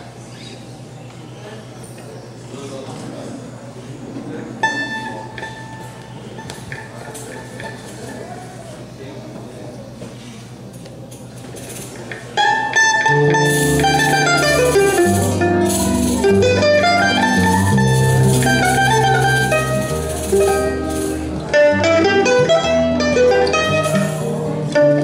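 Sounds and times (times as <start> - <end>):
murmur of people talking: 0.0 - 25.0
plucked string note ringing: 4.6 - 7.8, 12.4 - 25.0
choro trio playing: 4.6 - 8.7, 12.3 - 25.0.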